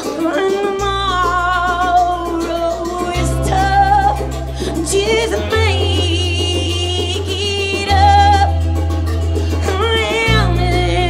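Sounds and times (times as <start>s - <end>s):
electric bass: 0.0s - 11.0s
electric guitar: 0.0s - 11.0s.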